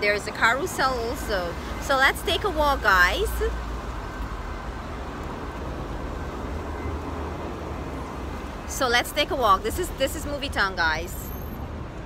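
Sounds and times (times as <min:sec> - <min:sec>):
traffic hiss and rumble: 0:00.0 - 0:12.0.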